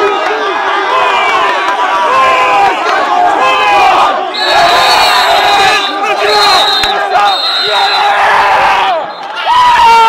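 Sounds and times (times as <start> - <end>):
men shouting and cheering: 0.0 - 10.0
high shrill whistle note: 4.4 - 8.3.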